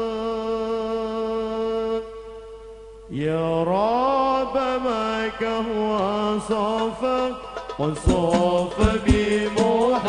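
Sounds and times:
man singing into a microphone: 0.0 - 2.4, 3.1 - 10.0.

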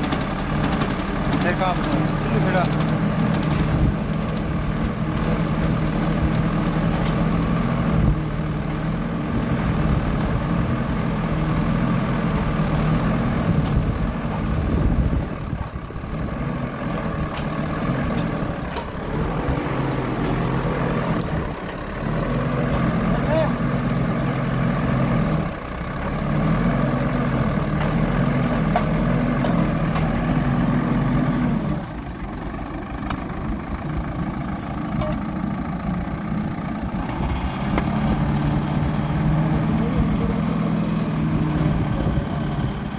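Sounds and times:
tractor engine running: 0.0 - 42.9.

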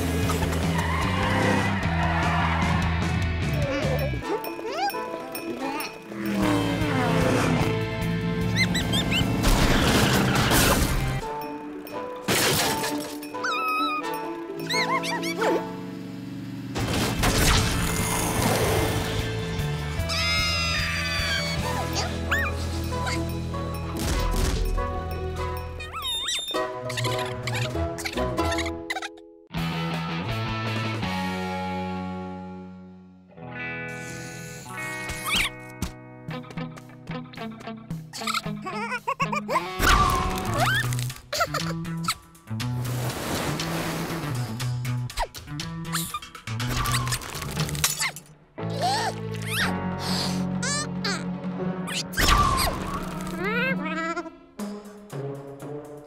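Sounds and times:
background music: 0.0 - 16.8, 17.4 - 56.0
squeaky cartoon creature cry: 3.6 - 6.4, 13.4 - 15.5, 20.1 - 23.3, 25.8 - 29.2, 38.2 - 41.7, 48.6 - 51.3, 51.9 - 54.4.

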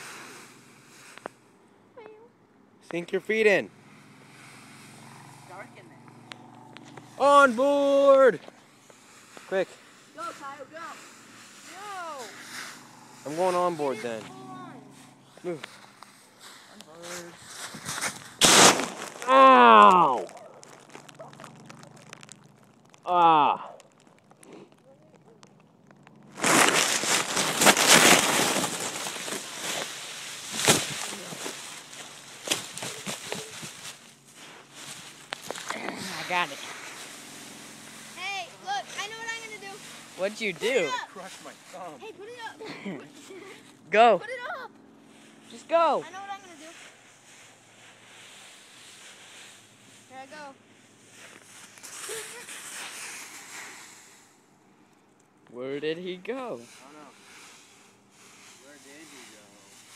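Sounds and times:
dry leaves rustling and crunching: 6.1 - 44.2, 45.3 - 54.2, 56.3 - 59.9.

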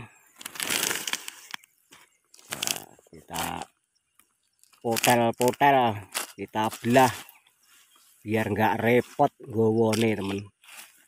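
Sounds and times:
honeycomb tearing: 0.3 - 1.7, 2.3 - 7.2.

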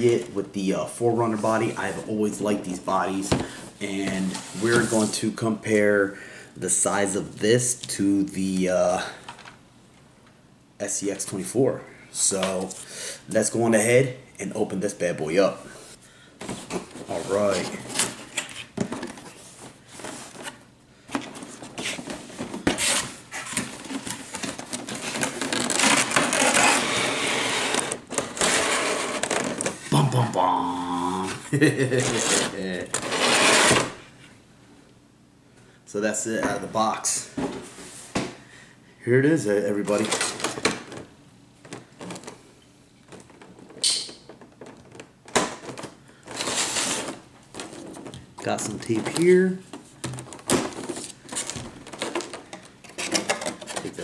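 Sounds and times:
plastic packaging crinkling: 21.4 - 26.9.

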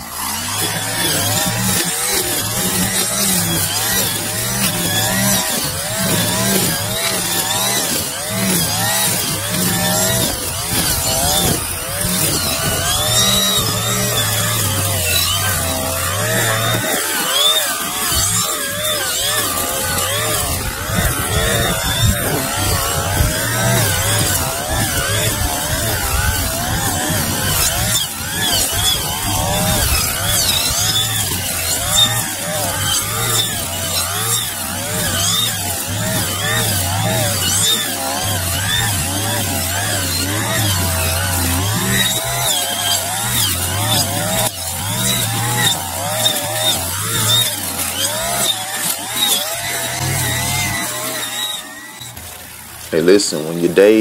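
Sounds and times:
string trimmer cutting grass: 0.0 - 54.0.

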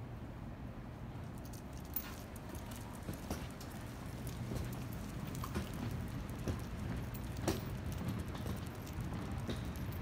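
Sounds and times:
footsteps on concrete: 1.8 - 10.0.

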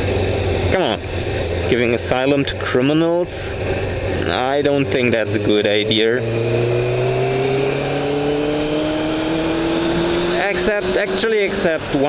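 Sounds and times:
motorcycle engine cruising: 0.0 - 12.0.

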